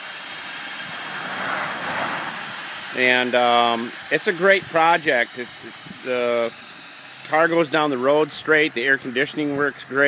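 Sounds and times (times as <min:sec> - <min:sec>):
car passing: 0:00.7 - 0:03.6.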